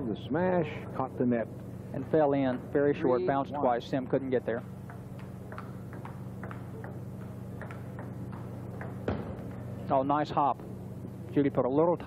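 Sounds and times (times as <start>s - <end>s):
table tennis ball clicking: 4.8s - 9.6s.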